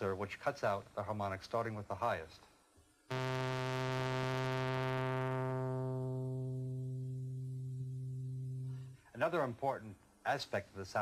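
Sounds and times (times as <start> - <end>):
synthesizer low note filter sweep: 3.1 - 9.0.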